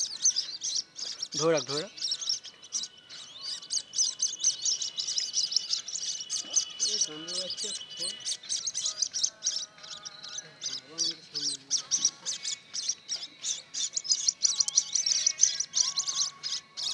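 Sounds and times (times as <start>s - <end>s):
ducklings peeping: 0.0s - 16.9s.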